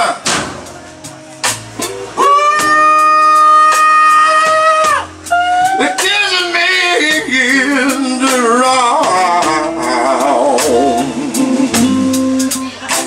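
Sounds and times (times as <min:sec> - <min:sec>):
electric blues band playing: 0:00.0 - 0:13.0.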